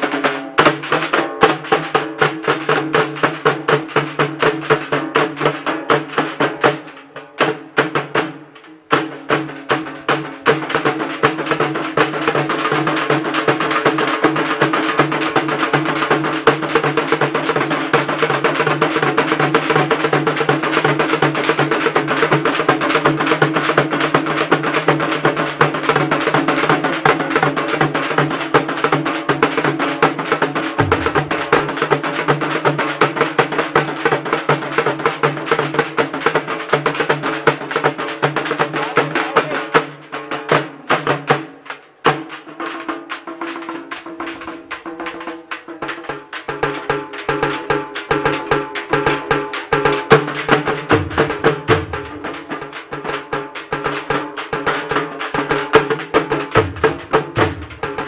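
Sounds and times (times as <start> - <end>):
large drums beaten fast: 9.3 - 41.4, 42.1 - 58.0.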